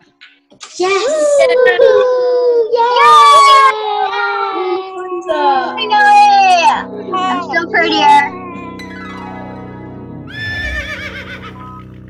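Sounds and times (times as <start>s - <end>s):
soft background music: 3.8s - 12.0s
horse whinny: 10.3s - 11.6s.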